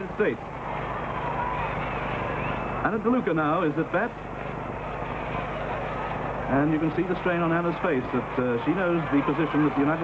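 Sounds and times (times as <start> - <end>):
film soundtrack hiss and hum: 0.0 - 10.0.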